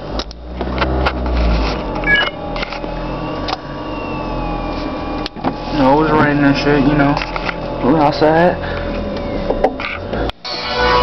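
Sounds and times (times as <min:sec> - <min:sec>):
car engine hum: 0:00.0 - 0:10.4
faint falling whine: 0:00.4 - 0:11.0
rising electronic beep: 0:01.6 - 0:09.8.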